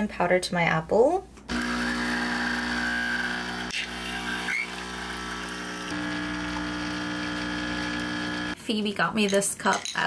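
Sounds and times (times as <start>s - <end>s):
coffee machine pump humming: 1.5s - 8.6s
coffee streaming into mug: 1.6s - 8.6s.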